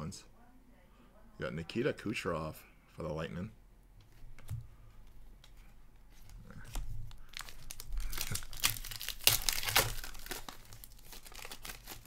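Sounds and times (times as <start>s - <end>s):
foil wrapper tearing and crinkling: 6.6s - 12.0s.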